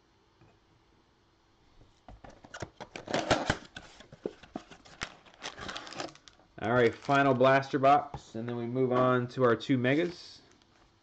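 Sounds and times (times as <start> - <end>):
cards and boxes clicking rustling: 2.2 - 7.7.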